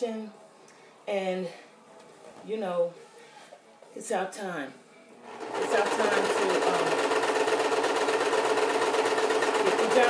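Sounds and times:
electric sewing machine running: 0:05.2 - 0:10.0.

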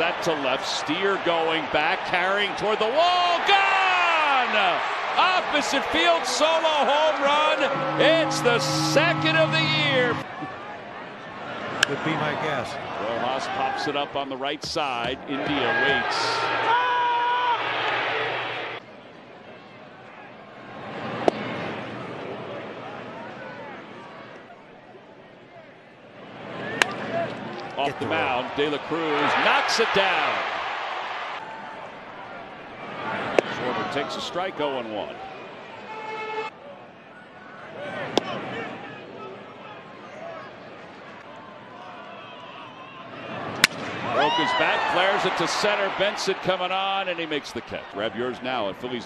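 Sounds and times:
commentary: 0:02.6 - 0:10.4, 0:27.8 - 0:30.5, 0:44.2 - 0:49.0
steady horn-like tone: 0:07.2 - 0:10.4
crowd murmur: 0:07.4 - 0:12.7.

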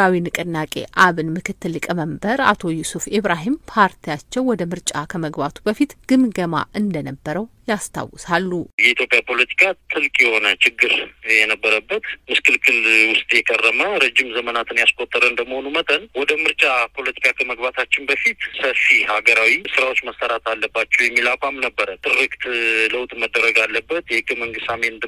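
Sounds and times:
narrator talking: 0:00.0 - 0:25.0.

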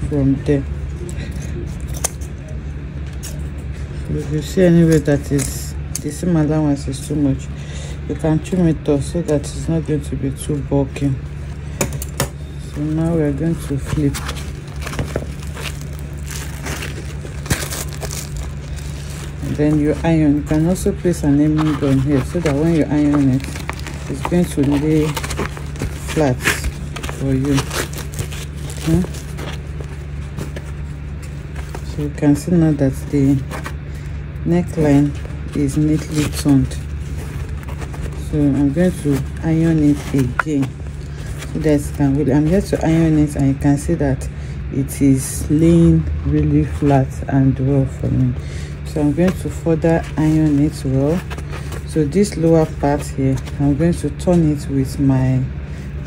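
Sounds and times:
steady low hum: 0:00.0 - 0:56.0
metallic fabric rustling and crinkling: 0:12.4 - 0:33.9, 0:34.5 - 0:43.4.

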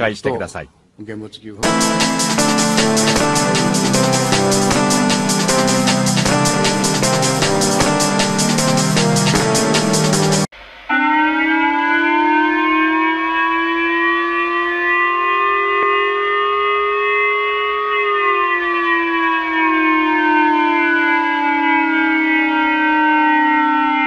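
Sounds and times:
rising warning siren tone: 0:01.6 - 0:24.0.

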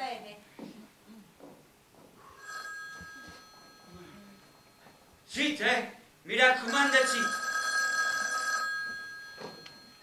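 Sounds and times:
telephone bell ringing: 0:02.4 - 0:05.1, 0:06.6 - 0:10.0.

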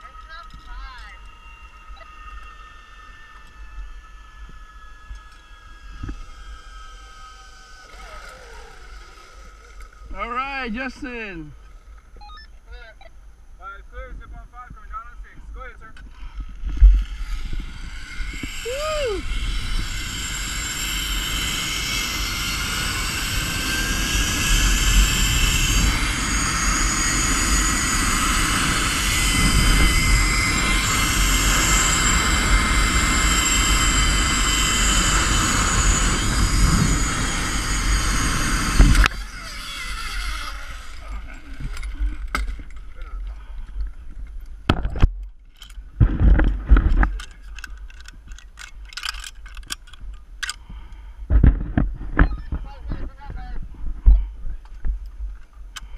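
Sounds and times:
zipline trolley whirring on cable: 0:00.0 - 0:12.0, 0:16.2 - 0:43.9.

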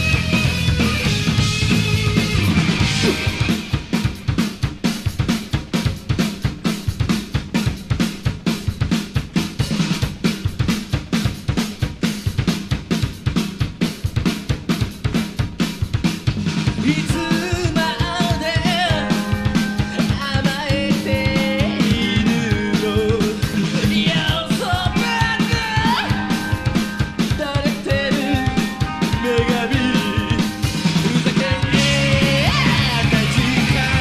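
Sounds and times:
melodic lead guitar: 0:00.0 - 0:04.0, 0:17.0 - 0:34.0
heavy metal drums and cymbals: 0:00.0 - 0:34.0.

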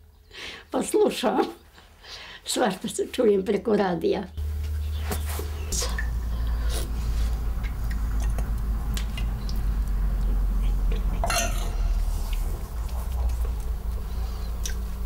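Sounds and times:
steady low hum: 0:04.4 - 0:15.0
metal spoon scraping a pot: 0:11.2 - 0:12.1.

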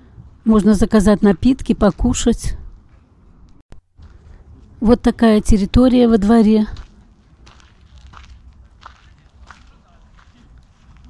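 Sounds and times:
faint footsteps: 0:01.4 - 0:04.8, 0:06.6 - 0:11.0.

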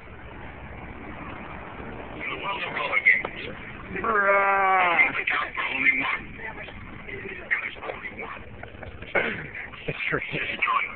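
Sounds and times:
low rumble in vehicle cabin: 0:00.0 - 0:10.9
voices: 0:01.8 - 0:10.9.

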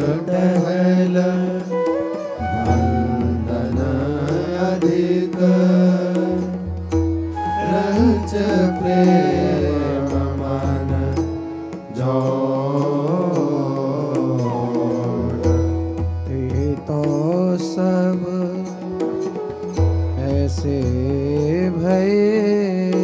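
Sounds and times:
voice singing a chant: 0:02.4 - 0:06.5, 0:07.5 - 0:11.4.

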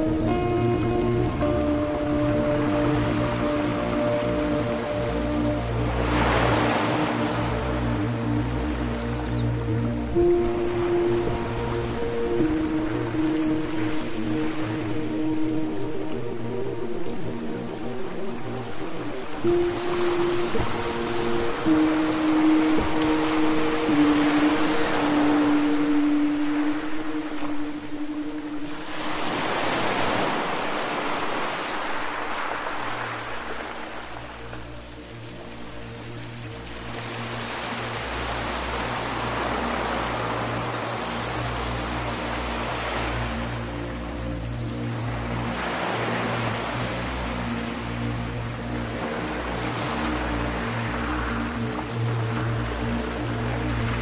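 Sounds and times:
low steady drone: 0:00.0 - 0:31.4, 0:33.0 - 0:54.0
ambient music sustained tones: 0:00.0 - 0:54.0
ocean waves: 0:00.0 - 0:54.0.

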